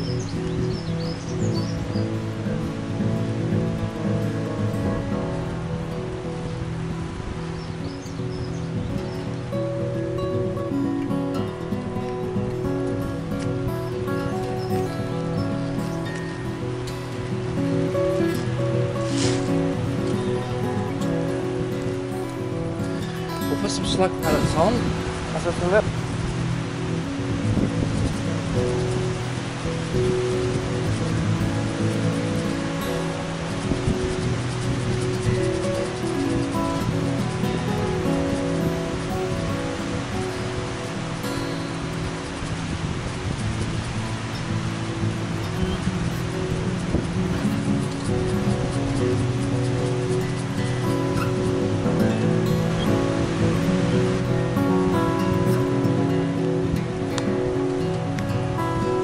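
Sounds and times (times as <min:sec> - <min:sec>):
music of slow held notes: 0:00.0 - 0:59.0.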